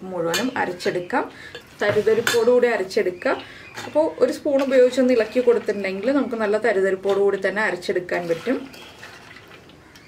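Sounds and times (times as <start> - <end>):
woman talking: 0.0 - 8.7
spoon clinking on metal kitchenware: 0.2 - 2.7.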